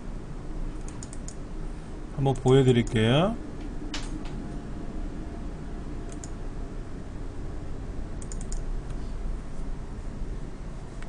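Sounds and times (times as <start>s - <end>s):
low background hum: 0.0s - 11.0s
computer keyboard clicks: 0.8s - 1.4s, 6.1s - 6.4s, 8.2s - 9.0s.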